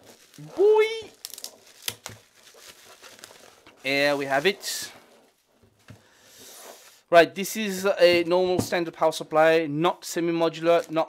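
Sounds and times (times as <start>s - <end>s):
bubble wrap crinkling: 0.0s - 7.1s, 10.5s - 11.0s.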